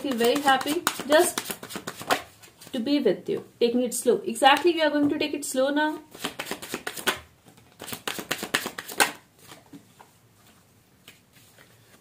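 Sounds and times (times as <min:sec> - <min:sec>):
cards being shuffled: 0:00.0 - 0:02.7, 0:06.1 - 0:12.0.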